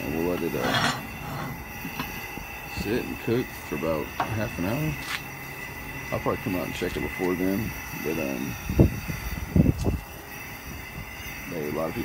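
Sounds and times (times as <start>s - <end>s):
gas burner whistling and hissing: 0.0s - 12.0s.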